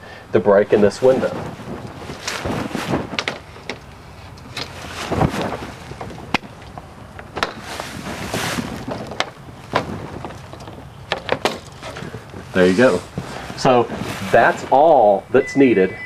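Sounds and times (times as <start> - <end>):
frame scraping and rubbing: 0.7 - 6.6, 7.4 - 16.0
frame clicks and knocks: 8.8 - 12.2.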